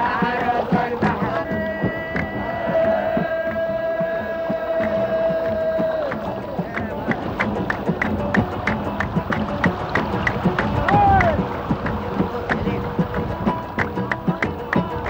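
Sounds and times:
men singing: 0.0 - 15.0
rhythmic hand-clapping: 0.0 - 15.0.

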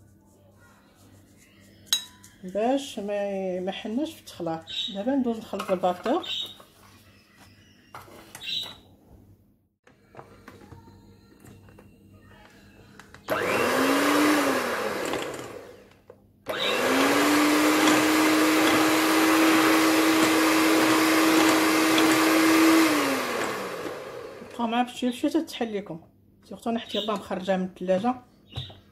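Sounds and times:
electric hand mixer running: 13.3 - 24.6.

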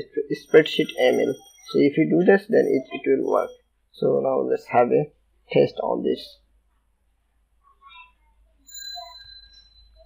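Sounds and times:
high thin ringing tone: 0.0 - 3.7, 8.6 - 10.0.

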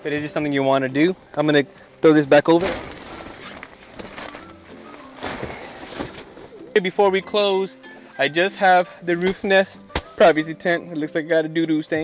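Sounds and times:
soft background music: 0.0 - 12.0
tent fabric rustling: 2.2 - 7.1.

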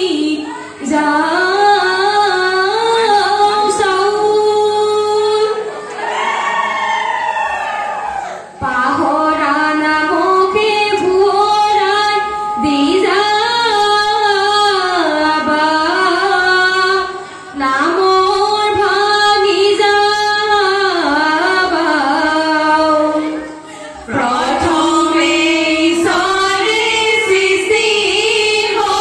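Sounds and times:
woman singing folk song through pa: 0.0 - 5.6, 8.6 - 23.4, 24.0 - 29.0.

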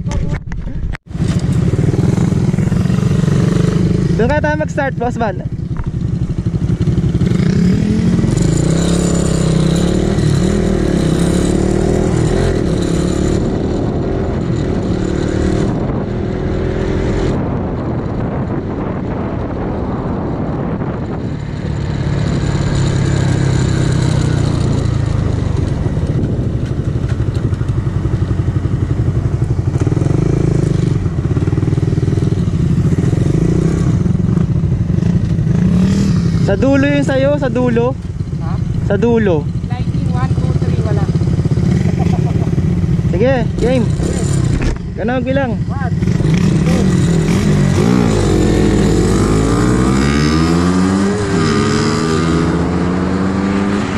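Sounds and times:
motorcycle engines riding: 0.0 - 53.9.

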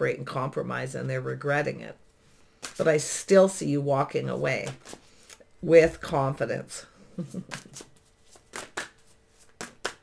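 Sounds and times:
cards being shuffled: 4.6 - 5.4, 7.4 - 10.0
person laughing: 7.1 - 7.8.

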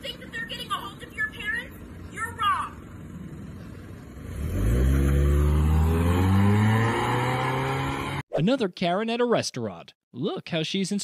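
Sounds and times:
car engine revving hard: 4.2 - 8.2.

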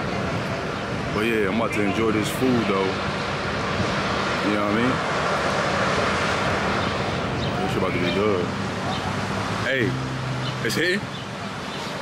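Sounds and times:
steady outdoor roar: 0.0 - 12.0.

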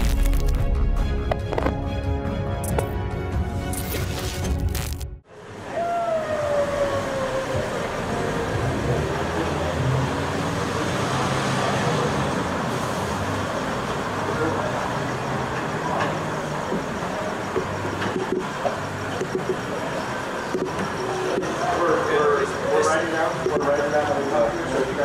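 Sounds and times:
city street traffic hum: 1.2 - 25.0
vehicle passing with falling tone: 5.3 - 17.9.

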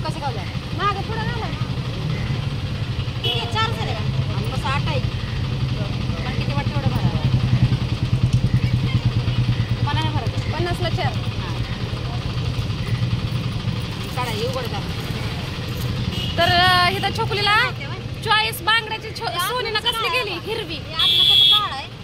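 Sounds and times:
women's voices: 9.8 - 11.7, 16.3 - 22.0.

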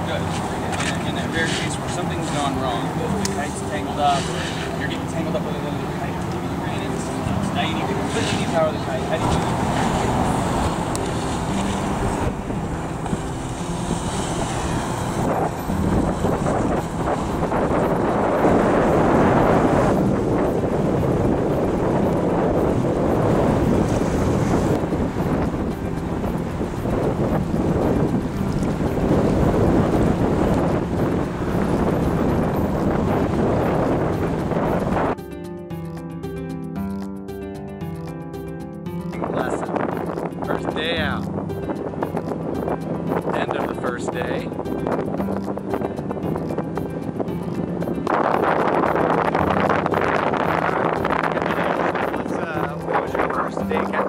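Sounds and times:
wind buffeting microphone: 0.0 - 35.2, 39.0 - 54.0
faint background music: 0.0 - 54.0.

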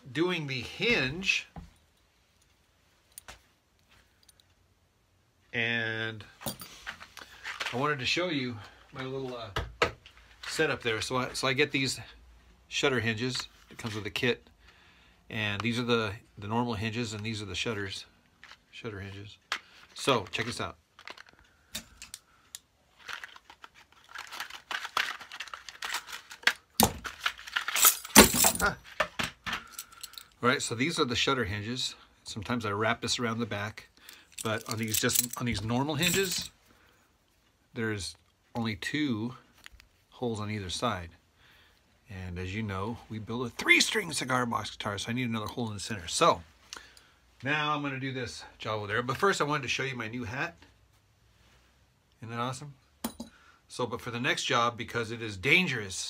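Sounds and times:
packaging rustling: 20.2 - 22.1, 22.9 - 28.2
brass hinges clinking: 27.7 - 28.8, 34.1 - 36.5.

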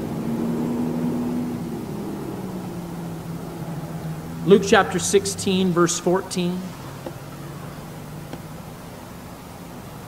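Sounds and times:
background rush: 0.0 - 10.0
low mechanical hum: 0.0 - 10.0.

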